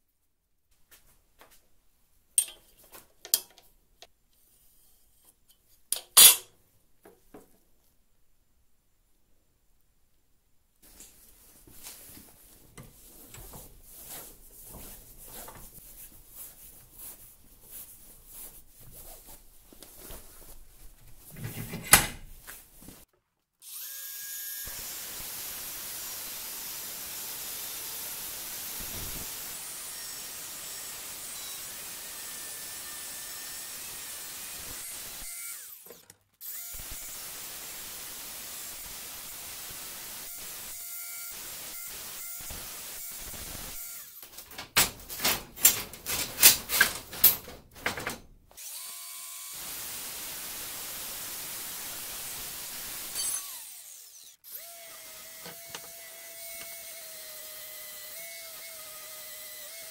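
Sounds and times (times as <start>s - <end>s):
angle grinder cutting steel: 6.0s - 6.5s, 23.6s - 44.3s, 48.6s - 59.9s.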